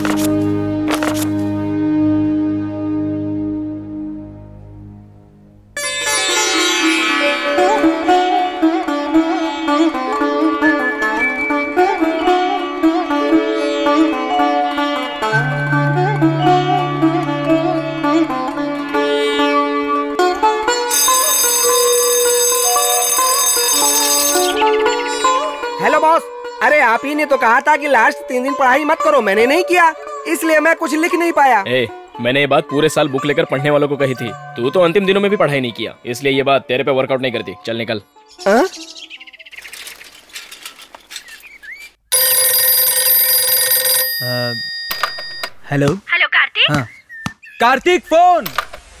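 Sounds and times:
film music with plucked strings: 5.8 - 21.1, 24.2 - 38.3
electric bell ringing: 20.9 - 24.8, 42.1 - 45.6.

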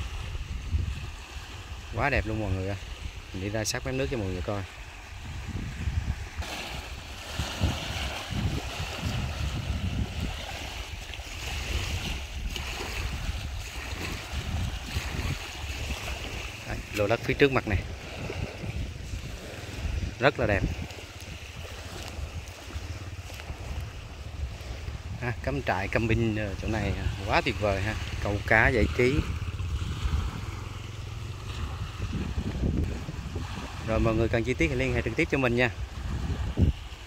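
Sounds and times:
small waves lapping: 0.0 - 37.0
wind buffeting microphone: 0.0 - 37.0.

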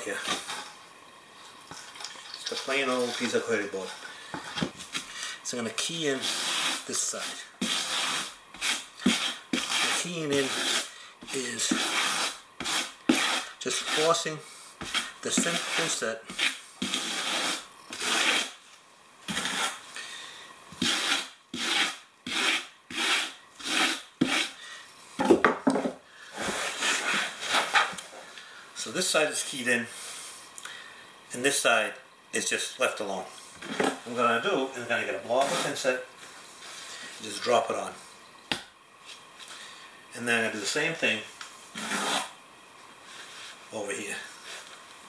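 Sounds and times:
trowel scraping mortar: 5.9 - 14.2, 14.8 - 18.6, 19.3 - 19.8, 20.8 - 24.6, 26.4 - 28.0, 35.3 - 35.8, 41.7 - 42.4.

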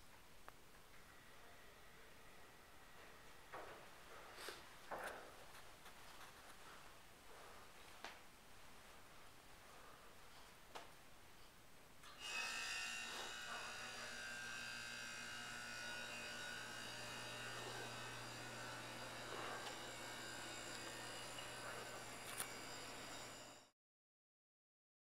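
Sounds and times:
buzzing hum with whining tones: 12.0 - 23.7.

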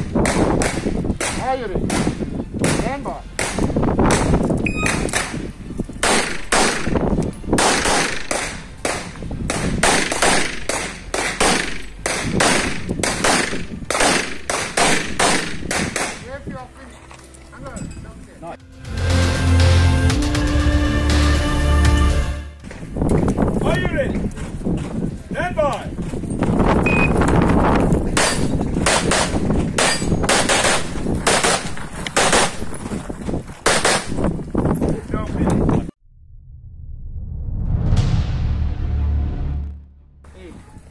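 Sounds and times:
shot timer beep: 4.6 - 5.0, 26.8 - 27.2
rapid pistol fire: 6.0 - 7.0, 7.6 - 16.2, 28.2 - 32.6, 33.6 - 34.2.

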